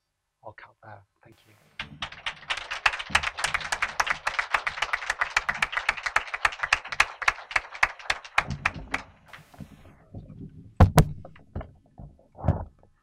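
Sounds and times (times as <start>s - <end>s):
audience applauding: 1.4s - 9.8s.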